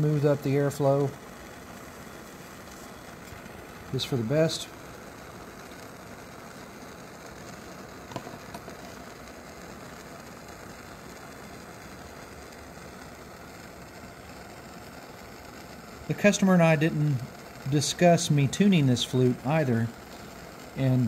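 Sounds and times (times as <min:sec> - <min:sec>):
mechanical hum: 0:00.0 - 0:21.0.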